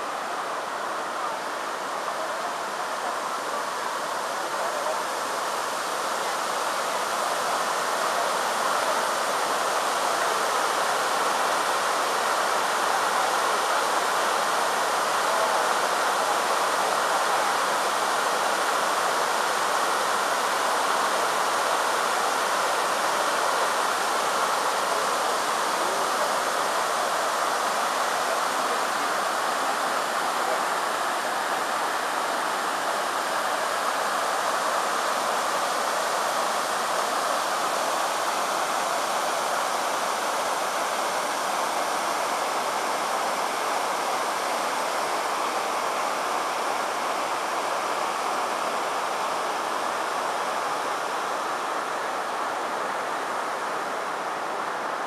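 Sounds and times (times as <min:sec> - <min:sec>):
water rushing over rocks: 0:00.0 - 0:55.0.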